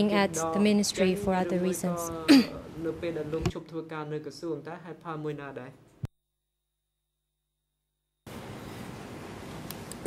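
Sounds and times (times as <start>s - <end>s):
throat clearing: 2.3s - 2.6s.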